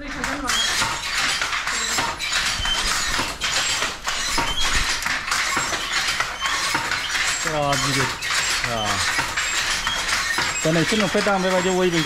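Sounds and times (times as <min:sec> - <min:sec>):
wooden frame squeaking: 0:00.0 - 0:12.0
wooden loom clacking: 0:00.0 - 0:12.0.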